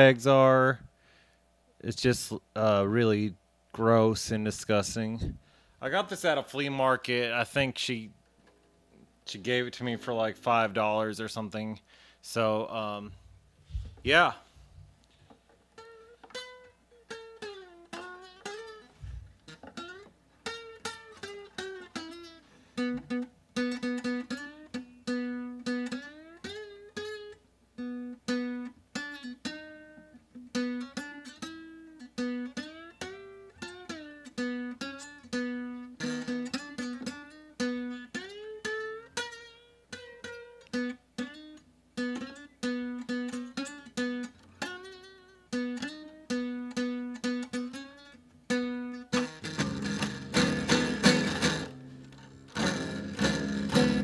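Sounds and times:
acoustic guitar picked notes: 15.7s - 54.0s.

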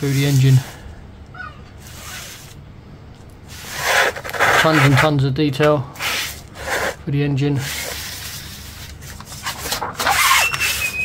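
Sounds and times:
fingers rubbing paper: 3.6s - 5.1s.

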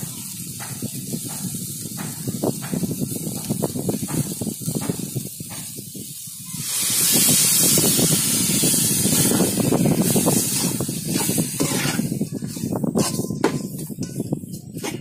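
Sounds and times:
liquid sizzling loudly: 0.0s - 14.3s
masala frying with crackle: 0.0s - 15.0s.

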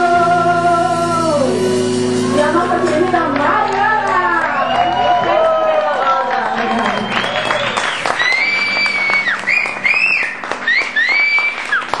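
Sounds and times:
audience applauding: 3.3s - 12.0s.

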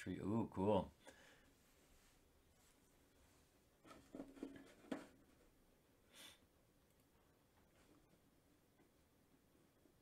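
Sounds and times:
brush strokes on paper: 1.5s - 3.6s.

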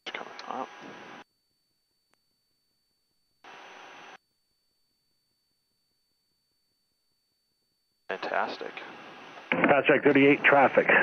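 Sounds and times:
radio click: 8.3s - 9.9s.

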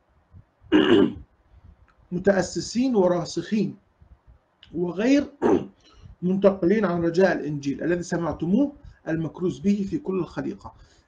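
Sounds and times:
man clearing his throat: 0.7s - 1.2s, 5.4s - 5.7s.

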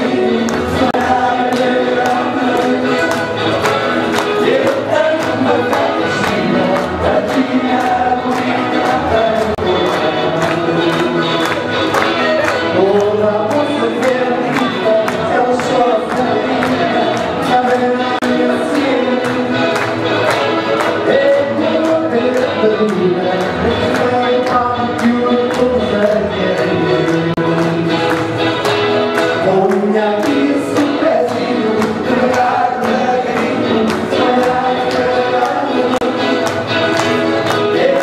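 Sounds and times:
many voices singing together: 0.0s - 11.7s, 12.8s - 24.4s, 29.4s - 38.0s
accordion: 0.0s - 38.0s
hands clapping in time: 0.0s - 38.0s
live band music: 0.0s - 38.0s.

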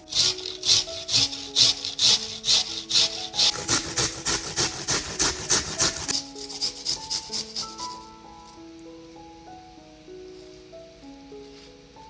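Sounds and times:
onion grating on metal grater: 0.0s - 8.1s
soft background music: 0.0s - 12.0s.

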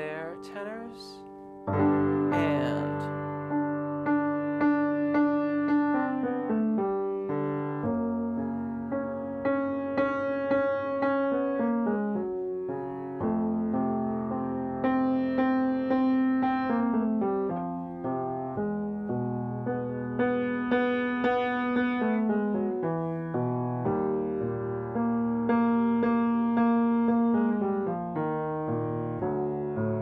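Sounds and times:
piano chords and scales: 0.0s - 30.0s.

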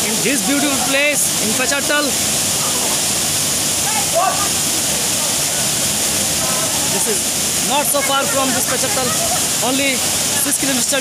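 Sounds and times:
waterfall pouring into pool: 0.0s - 11.0s.

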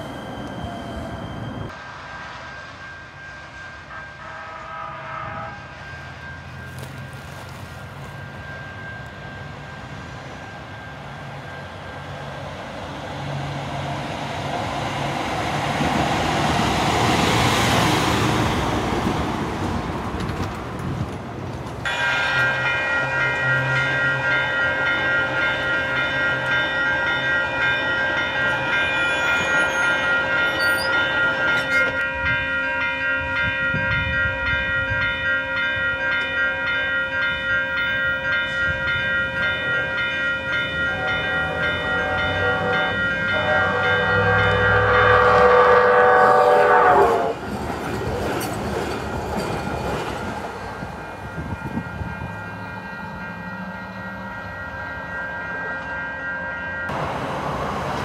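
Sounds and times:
crossing warning bell ringing: 0.0s - 18.5s, 21.8s - 57.3s
train horn: 1.7s - 7.6s, 21.9s - 25.2s, 28.3s - 32.4s, 40.8s - 47.4s.

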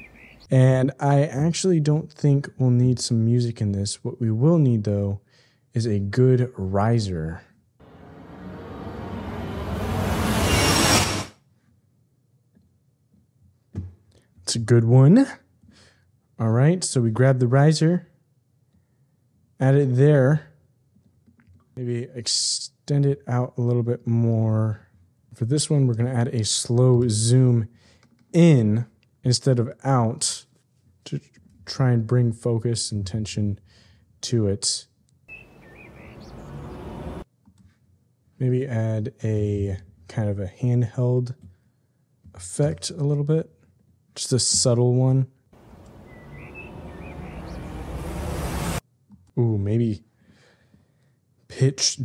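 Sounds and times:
faint bird chirp: 0.0s - 0.5s, 35.3s - 37.1s, 45.6s - 48.0s
hissing shimmering riser effect: 7.8s - 11.3s, 45.9s - 48.8s
wind rushing through trees: 45.6s - 48.8s.

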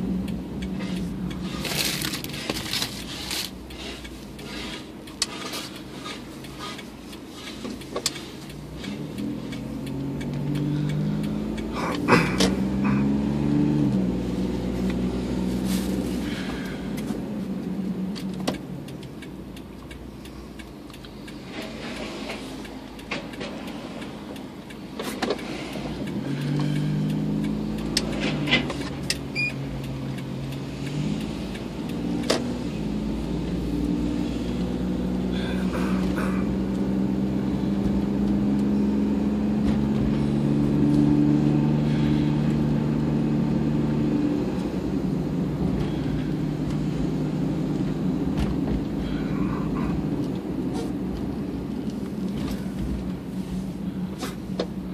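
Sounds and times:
car engine and road noise: 0.0s - 54.9s.

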